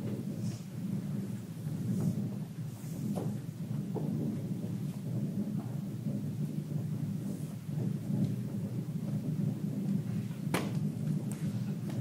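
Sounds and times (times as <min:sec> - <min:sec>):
low drum roll: 0:00.0 - 0:12.0.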